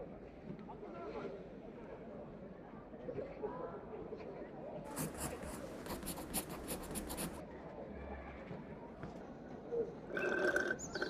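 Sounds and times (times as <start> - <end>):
pencil scratching on paper: 4.9 - 7.4.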